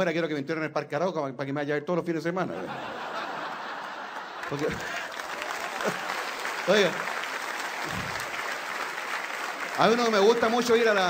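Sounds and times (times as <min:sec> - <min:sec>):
audience applauding: 0:03.5 - 0:11.0.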